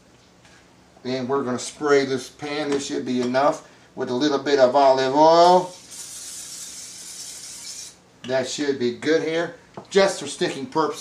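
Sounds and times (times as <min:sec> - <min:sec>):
cooking spray hissing: 0:05.4 - 0:08.0.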